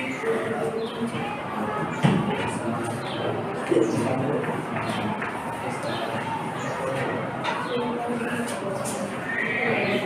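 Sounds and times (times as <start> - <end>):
students chattering: 0.0 - 10.0.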